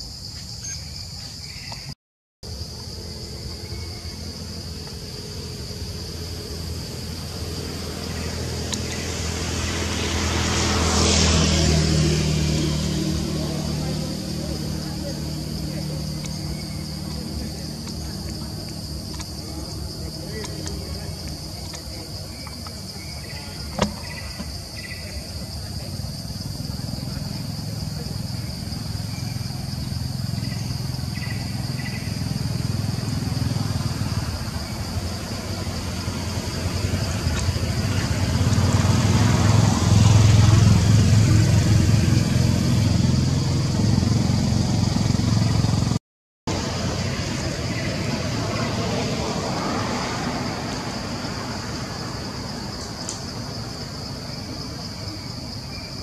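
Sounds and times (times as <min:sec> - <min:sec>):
high insect drone: 0:00.0 - 0:56.0
vehicle engine rumble: 0:00.0 - 0:56.0.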